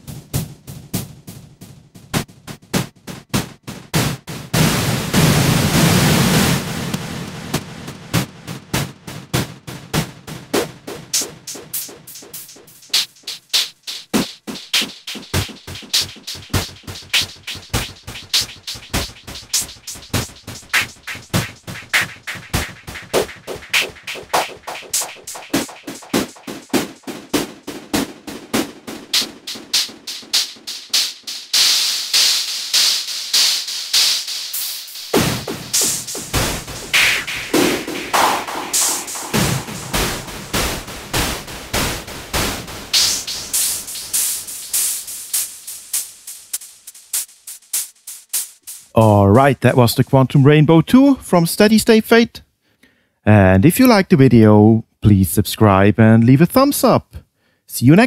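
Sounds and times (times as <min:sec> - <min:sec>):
synthesizer hiss: 0:11.2 - 0:27.6, 0:29.1 - 0:50.6
synthesizer percussive noise hits: 0:11.2 - 0:28.0, 0:35.0 - 0:50.2.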